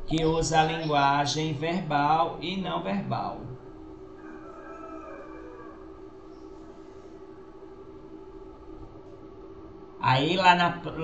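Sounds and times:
faint two-pitch hum: 0:00.0 - 0:11.0
low background noise: 0:00.0 - 0:11.0.

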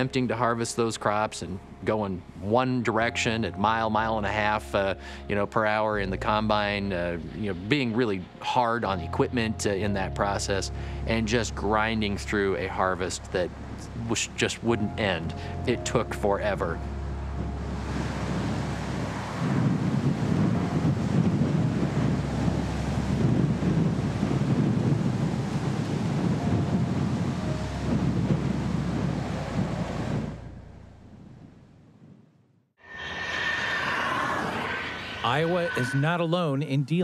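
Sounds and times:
steady rushing noise: 0:16.3 - 0:30.6, 0:32.8 - 0:36.7.

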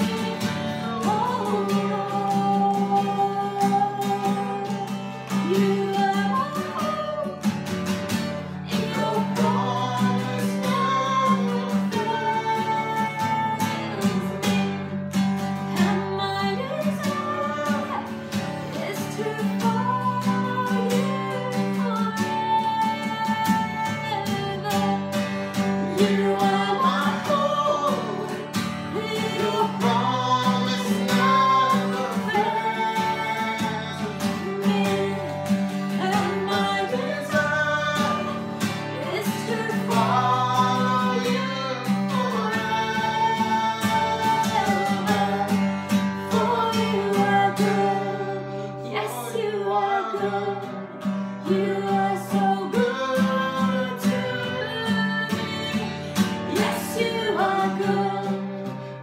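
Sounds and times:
woman singing worship song: 0:00.0 - 0:07.7, 0:08.6 - 0:59.0
strummed acoustic guitar: 0:00.0 - 0:59.0.

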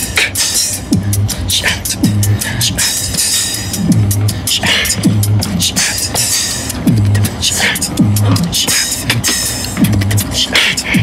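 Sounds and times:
beatboxing: 0:00.0 - 0:11.0
deep bass notes dropping in pitch: 0:03.7 - 0:05.8.

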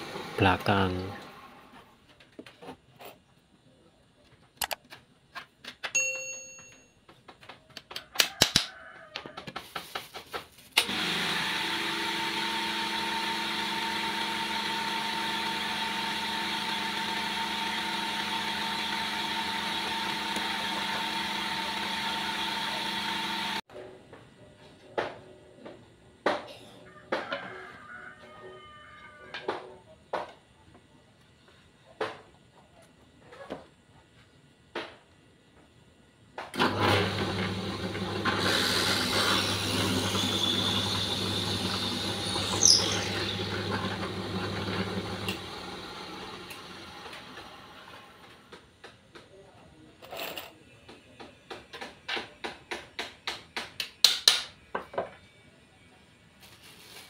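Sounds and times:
drill press motor humming: 0:00.0 - 0:01.6, 0:10.8 - 0:23.7, 0:36.6 - 0:48.3.

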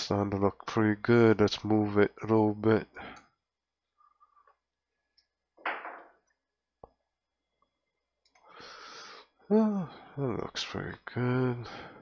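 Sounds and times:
person breathing close to microphone: 0:08.4 - 0:09.4.

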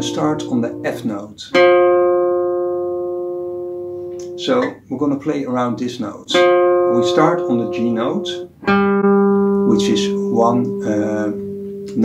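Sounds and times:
acoustic guitar note ringing: 0:00.0 - 0:04.9, 0:05.6 - 0:12.0.

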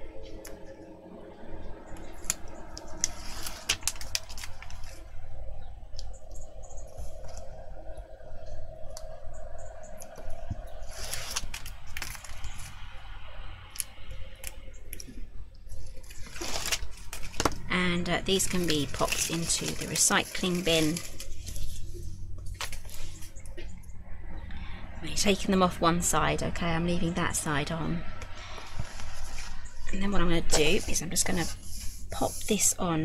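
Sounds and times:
papery liner peeling: 0:02.2 - 0:05.0.

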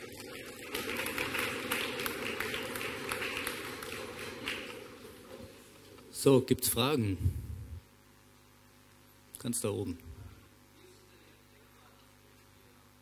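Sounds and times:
audience applause: 0:00.0 - 0:05.6.

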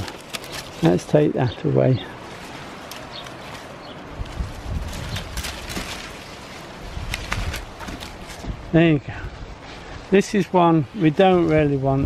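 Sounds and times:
secateurs snipping stems: 0:00.0 - 0:01.0, 0:02.5 - 0:06.4, 0:07.0 - 0:08.4
leaves rustling: 0:00.0 - 0:12.0.

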